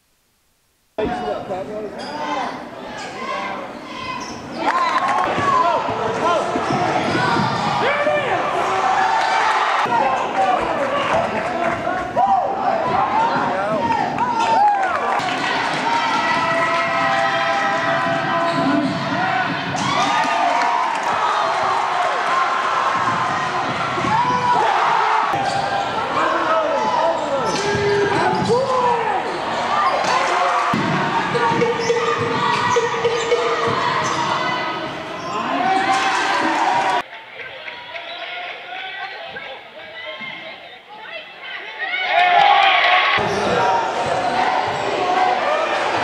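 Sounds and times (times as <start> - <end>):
crowd and players' voices: 1.0 - 46.0
sneakers squeaking: 2.0 - 8.2, 17.7 - 20.3, 25.3 - 36.4.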